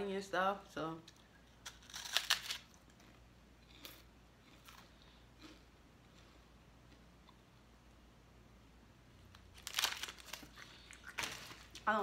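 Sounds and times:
crunching snack bites: 1.4 - 6.3, 9.4 - 11.8
foil wrapper crinkling: 9.5 - 12.0.

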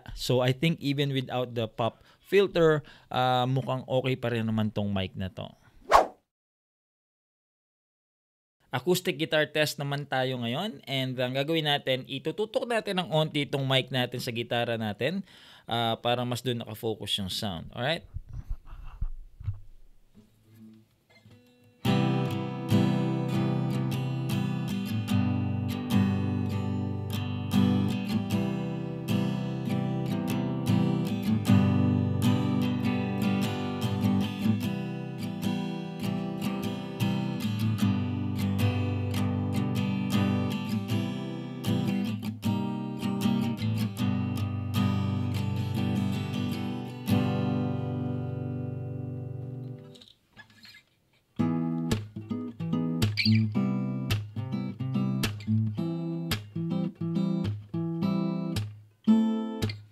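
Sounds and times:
acoustic guitar playing chords: 20.5 - 50.0, 51.4 - 59.9.

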